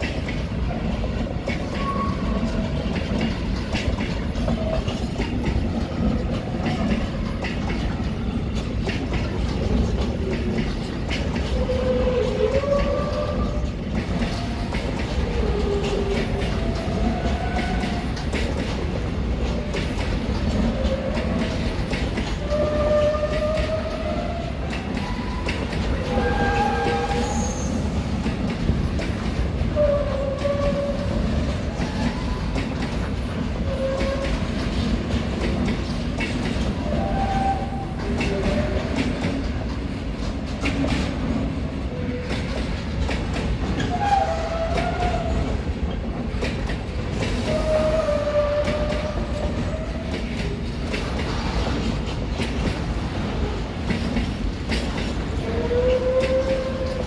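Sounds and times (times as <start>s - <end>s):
train wagons rumbling: 0.0s - 57.0s
wheels clicking over rail joints: 0.0s - 57.0s
wheel squeals: 1.5s - 3.0s, 24.7s - 27.9s.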